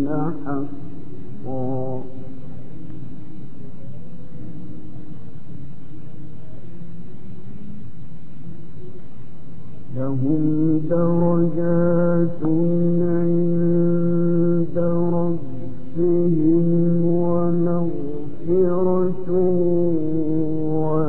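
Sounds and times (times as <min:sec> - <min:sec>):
man reciting melodically: 0:00.0 - 0:02.5, 0:09.9 - 0:21.0.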